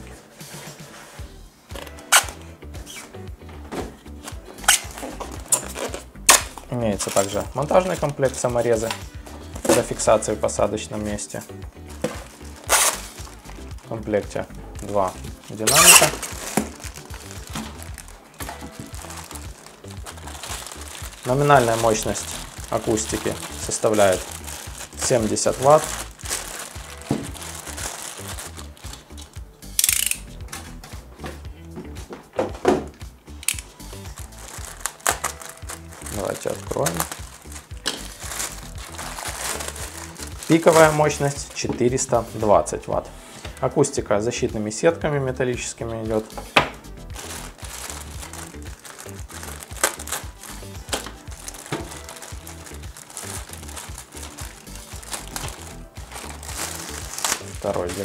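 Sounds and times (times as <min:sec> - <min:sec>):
background music with steady beat: 0:00.0 - 0:58.0
plastic wrap crinkling: 0:04.2 - 0:08.9, 0:12.0 - 0:14.0, 0:14.8 - 0:30.2, 0:33.5 - 0:41.6, 0:47.1 - 0:58.0.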